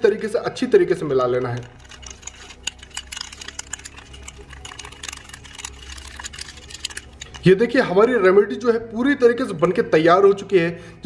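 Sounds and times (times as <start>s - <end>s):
metal spoon scraping glass bowl: 1.4s - 7.5s.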